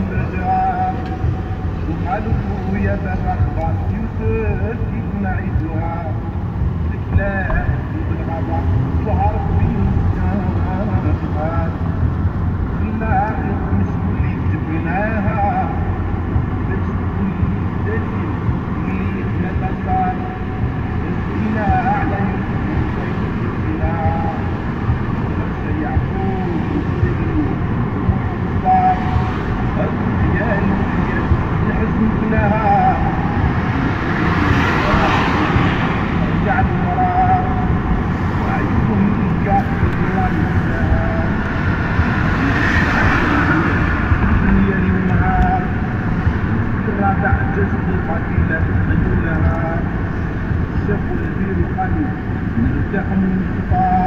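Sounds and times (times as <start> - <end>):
car road and engine noise: 0.0 - 54.0
song playing: 0.0 - 54.0.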